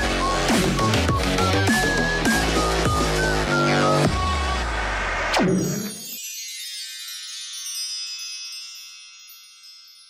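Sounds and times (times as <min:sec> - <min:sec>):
high shimmering chime: 0:05.6 - 0:10.0.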